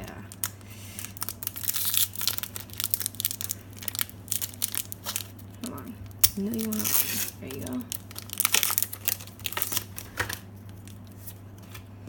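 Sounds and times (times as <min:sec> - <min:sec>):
foil wrapper crinkling: 0:00.0 - 0:11.9
low steady hum: 0:00.0 - 0:12.0.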